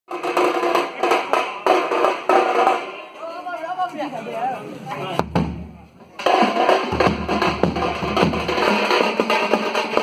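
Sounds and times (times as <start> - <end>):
bass and snare drums beating: 0.1 - 3.0, 5.2 - 10.0.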